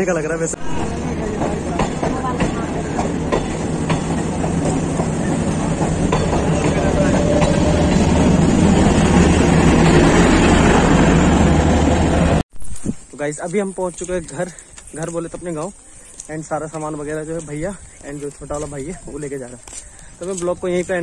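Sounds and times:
train coaches rumbling past: 0.2s - 12.4s.

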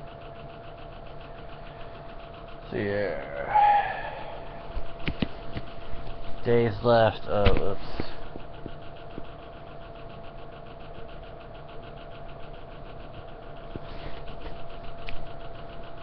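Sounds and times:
pulsing mechanical hum: 0.0s - 16.0s.

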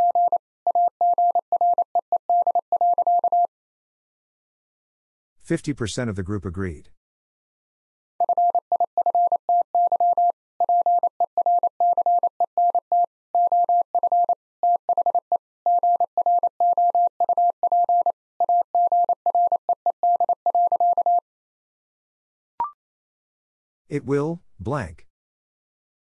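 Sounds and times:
morse code tone: 0.0s - 3.5s, 8.2s - 21.2s.

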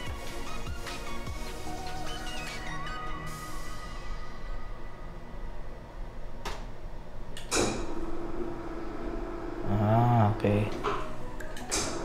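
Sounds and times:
window blind motor humming: 7.8s - 12.0s.

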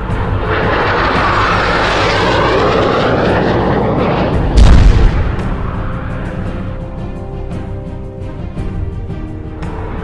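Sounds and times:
jet engine passing: 0.0s - 7.5s
loud low boom: 4.0s - 5.6s.

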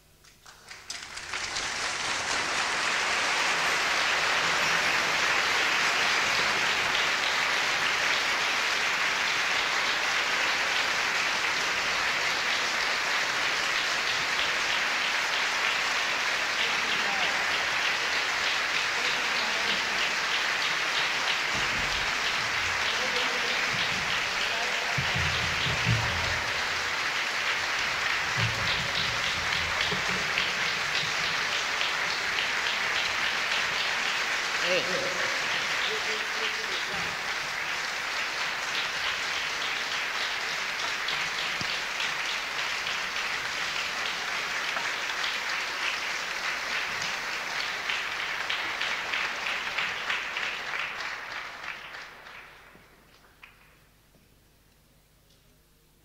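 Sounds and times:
audience applause: 0.0s - 53.9s.

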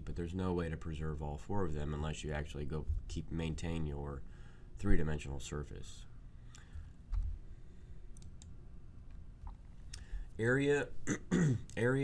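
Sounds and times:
computer clicks: 8.1s - 10.1s.

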